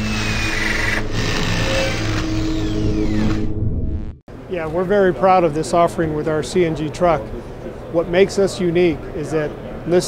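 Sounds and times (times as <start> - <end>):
grinding industrial intro music: 0.0 - 4.2.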